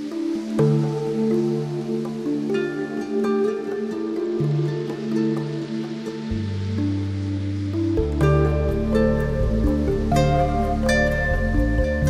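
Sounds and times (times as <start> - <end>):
soft held chords music: 0.0 - 12.0.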